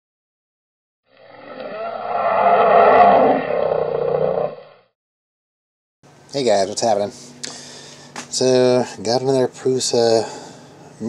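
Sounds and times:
roaring sound: 0:01.1 - 0:04.8.

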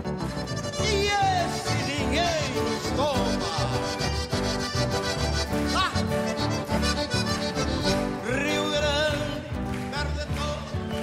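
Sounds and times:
acoustic guitars: 0:00.0 - 0:11.0
live folk band playing: 0:00.0 - 0:11.0.

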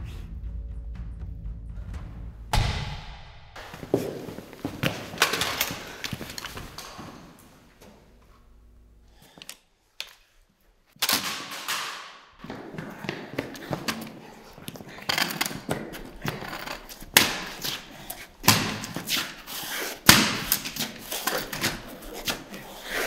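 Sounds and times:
heavy bangs with ringing tail: 0:02.5 - 0:03.8.

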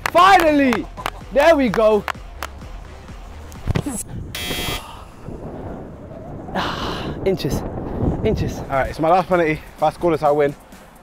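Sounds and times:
harsh buzzer: 0:04.4 - 0:04.9
faint background music: 0:07.2 - 0:11.0.

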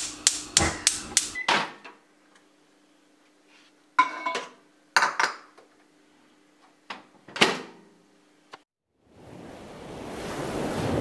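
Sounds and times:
stove igniter clicking: 0:00.0 - 0:01.4.

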